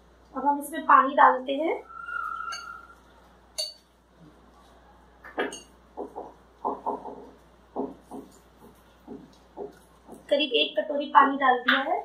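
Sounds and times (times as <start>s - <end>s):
glass clink: 2.4s - 3.0s, 3.6s - 3.9s, 5.4s - 5.8s.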